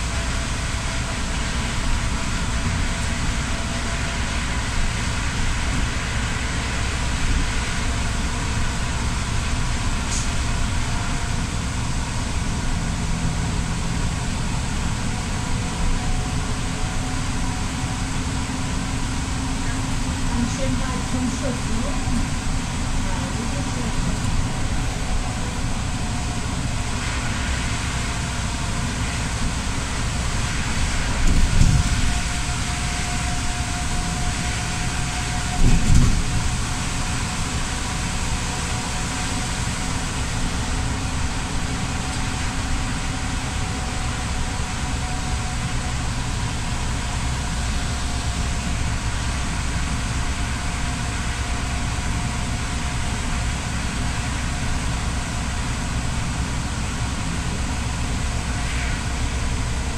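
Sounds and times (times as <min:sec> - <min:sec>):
bus engine hum: 0:00.0 - 0:59.9
tyre hiss on wet road: 0:00.0 - 0:59.9.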